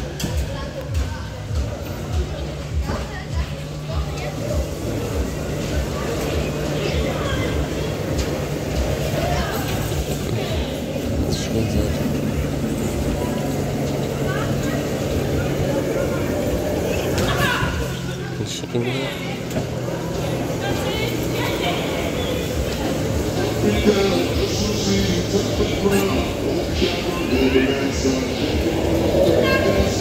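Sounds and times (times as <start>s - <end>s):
bumper cars humming and rolling: 0.0s - 30.0s
indistinct voices: 0.0s - 30.0s.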